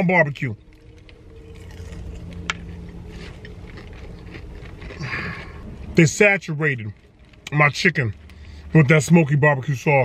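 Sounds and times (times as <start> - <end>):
person chewing crispy food: 0.0 - 9.2
steady low hum in car: 0.0 - 10.0.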